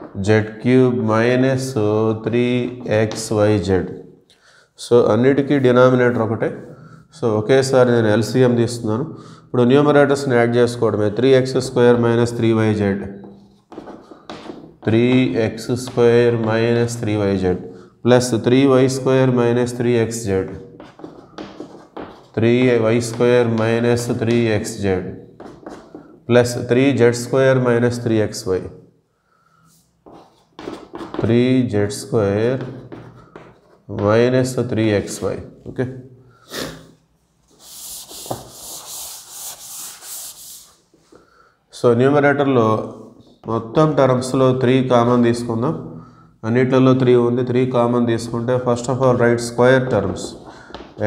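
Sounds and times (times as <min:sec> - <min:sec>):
chalk tapping on blackboard: 0:13.2 - 0:16.8, 0:20.5 - 0:24.5, 0:25.4 - 0:26.3, 0:30.0 - 0:31.2, 0:32.5 - 0:34.3, 0:37.5 - 0:40.8
chalk scratching on blackboard: 0:20.8 - 0:22.4, 0:25.4 - 0:26.2, 0:37.5 - 0:40.9.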